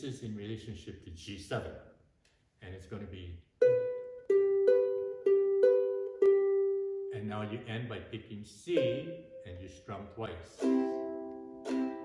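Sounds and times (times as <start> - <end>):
ukulele plucking single notes: 3.6 - 7.1, 8.7 - 12.0.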